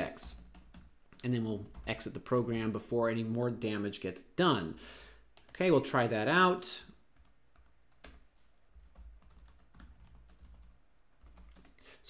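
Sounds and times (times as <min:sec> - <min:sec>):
typing on computer keyboard: 0:00.2 - 0:02.1, 0:07.2 - 0:11.8.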